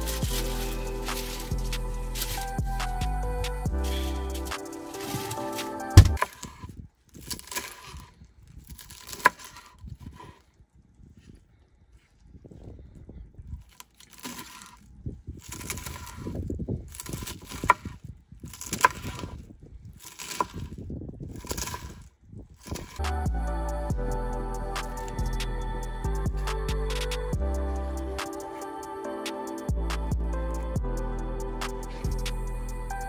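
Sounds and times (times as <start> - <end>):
knife crunching through lettuce: 0.0 - 2.6, 3.9 - 10.5, 13.6 - 23.0.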